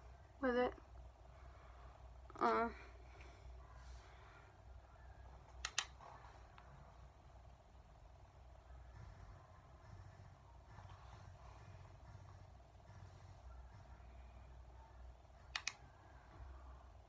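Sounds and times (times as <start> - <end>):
sharp clicks: 5.5 - 6.0, 15.4 - 15.8.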